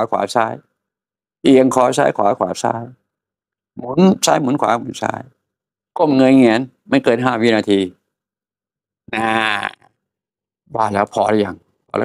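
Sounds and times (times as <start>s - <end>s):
man speaking: 1.5s - 3.0s, 3.8s - 5.4s, 6.0s - 8.0s, 10.7s - 12.0s.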